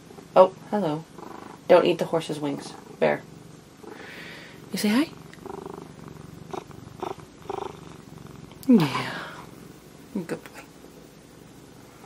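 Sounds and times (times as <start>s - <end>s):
cat purring: 0.0s - 12.0s.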